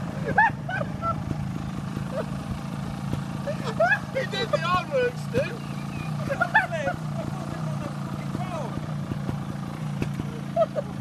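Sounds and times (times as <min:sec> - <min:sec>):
motorcycle engines idling: 0:00.0 - 0:11.0.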